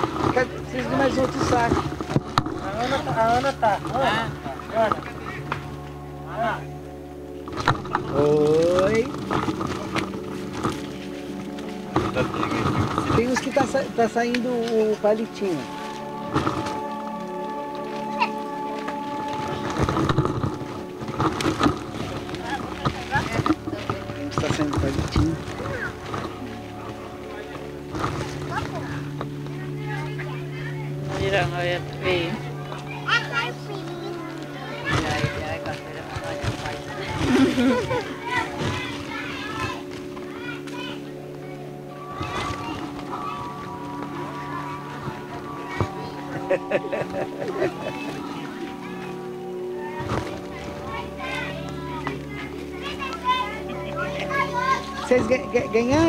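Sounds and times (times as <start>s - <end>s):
background music with held notes: 0.0s - 56.0s
children chattering: 0.0s - 56.0s
voices talking: 0.0s - 56.0s.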